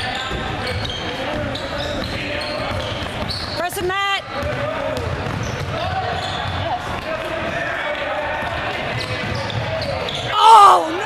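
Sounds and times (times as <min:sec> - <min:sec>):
spectators chatter and calls: 0:00.0 - 0:11.0
basketball dribbled on hardwood: 0:00.3 - 0:07.7
loud shout: 0:10.3 - 0:11.0.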